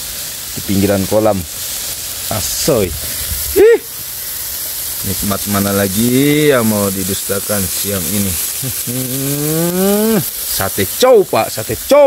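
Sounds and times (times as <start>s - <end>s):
meat sizzling on a grill: 0.0s - 12.0s
person saying uh: 3.5s - 3.9s, 7.6s - 12.0s.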